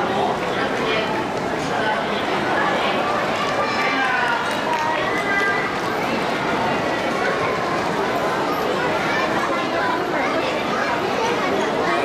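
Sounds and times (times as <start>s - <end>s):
audience noise: 0.0s - 12.0s.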